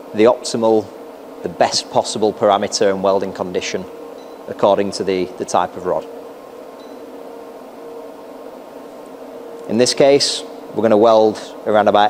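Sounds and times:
fan hum: 0.0 - 12.0.

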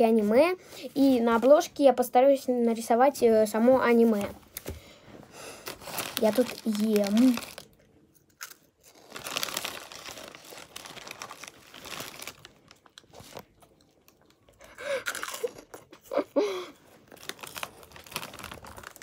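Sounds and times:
crunching and chewing snacks: 5.7 - 19.0.

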